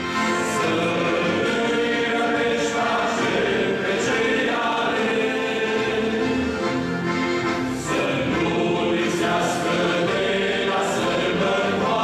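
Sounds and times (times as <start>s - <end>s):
men's choir singing: 0.0s - 6.8s, 7.8s - 12.0s
accordion: 0.0s - 12.0s.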